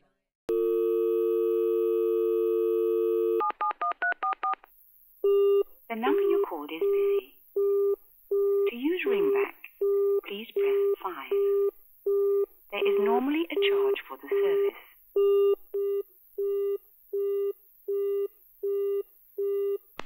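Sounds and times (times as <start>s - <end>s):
dial tone: 0.5s - 3.5s
person speaking: 5.9s - 7.4s, 8.6s - 11.7s, 12.7s - 15.0s.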